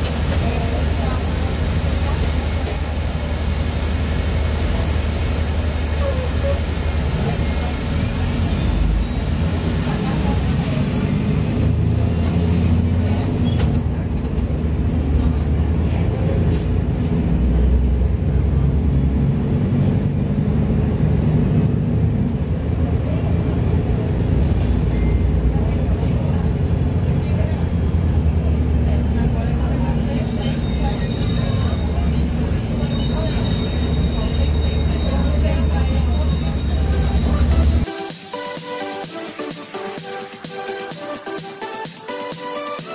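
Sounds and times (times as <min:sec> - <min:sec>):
bus diesel engine running: 0:00.0 - 0:38.0
electronic music: 0:36.6 - 0:42.9.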